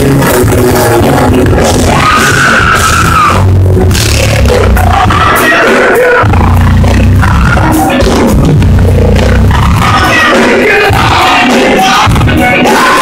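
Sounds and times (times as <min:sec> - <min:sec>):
live church band music: 0:00.0 - 0:13.0
voices singing: 0:00.0 - 0:13.0.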